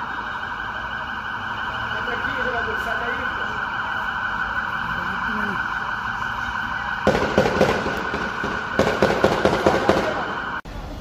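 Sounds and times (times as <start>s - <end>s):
siren steady high tone: 0.0s - 10.7s
rapid gunfire: 7.0s - 10.4s.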